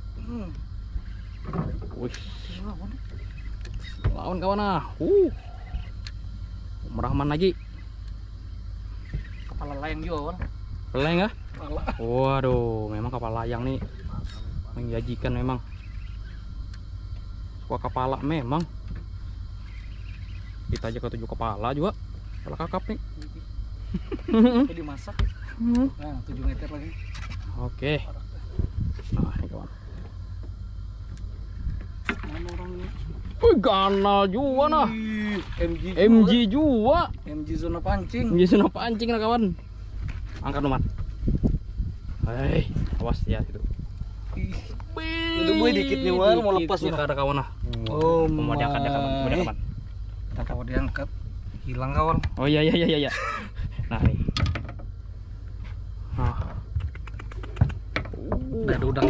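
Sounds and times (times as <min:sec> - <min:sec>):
man humming a held tone: 0:00.0 - 0:01.2
low rumble: 0:00.0 - 0:45.0.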